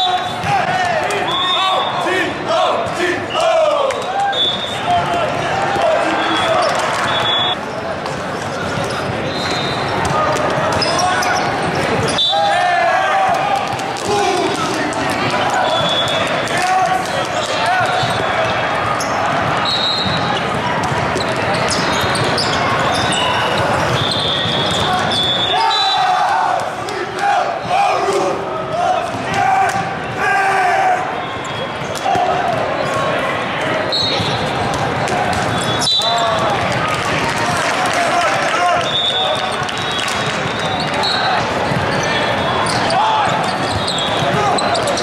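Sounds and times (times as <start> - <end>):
volleyballs hit and bouncing: 0.0 - 1.7, 2.5 - 25.4, 31.0 - 45.0
many voices echoing: 0.0 - 45.0
sneaker squeaks: 3.3 - 5.2, 6.0 - 12.6, 15.2 - 16.4, 17.0 - 26.1, 31.2 - 33.1, 33.9 - 36.4, 38.8 - 45.0.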